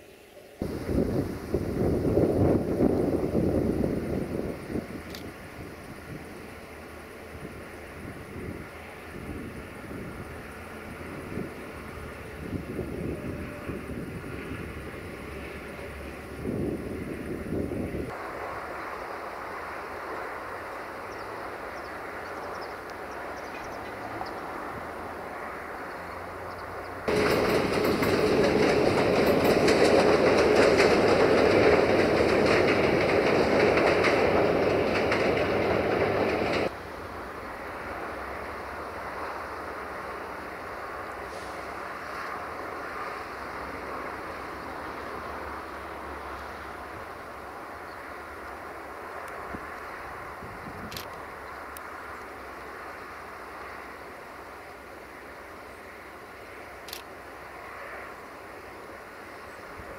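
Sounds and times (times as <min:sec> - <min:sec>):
train rolling noise: 0:00.0 - 0:59.9
train wheels clattering over rail joints: 0:26.8 - 0:36.8.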